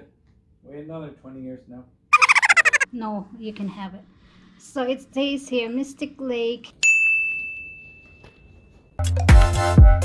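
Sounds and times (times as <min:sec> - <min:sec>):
high bell-like chime: 0:06.8 - 0:08.8.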